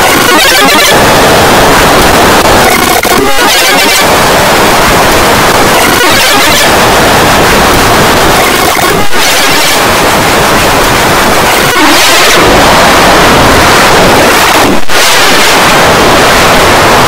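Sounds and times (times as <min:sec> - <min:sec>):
heavily distorted noise: 0:00.0 - 0:17.0.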